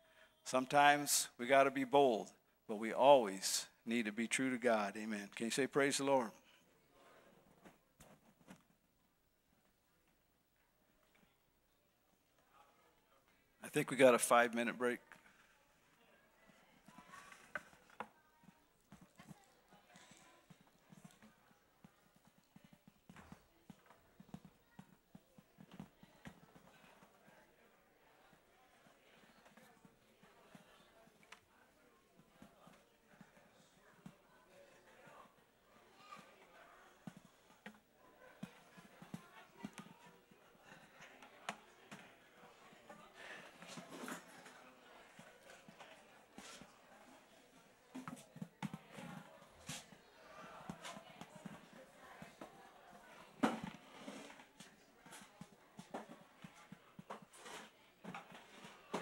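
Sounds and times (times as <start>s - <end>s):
footsteps and shuffling on floor: 48.0s - 52.6s.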